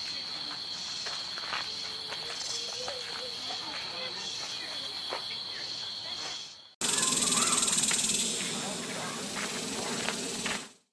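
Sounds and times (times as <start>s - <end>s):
faint ticks in leaf litter: 0.0s - 10.7s
high-pitched insect chorus: 0.0s - 10.9s.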